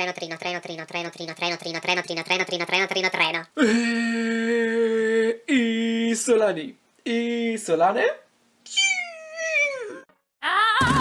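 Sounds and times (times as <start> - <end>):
music: 10.8 - 11.0.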